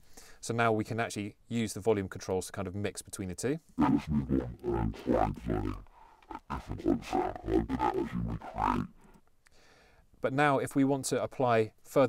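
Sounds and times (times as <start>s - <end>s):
distorted speech bass sound: 3.8s - 9.0s.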